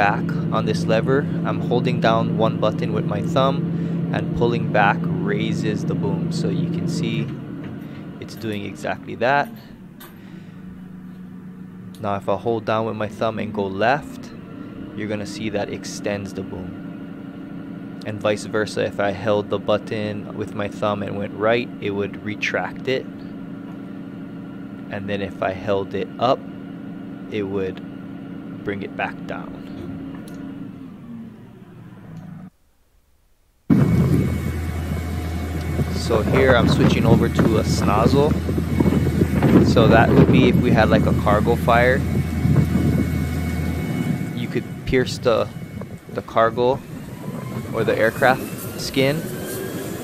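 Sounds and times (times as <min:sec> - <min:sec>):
fire truck engine hum: 0:00.0 - 0:32.7, 0:33.6 - 0:50.0
wind on microphone: 0:33.7 - 0:50.0.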